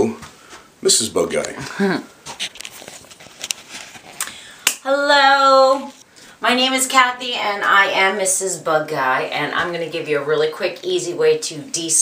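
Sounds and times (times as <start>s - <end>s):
woman laughing: 1.6s - 2.2s.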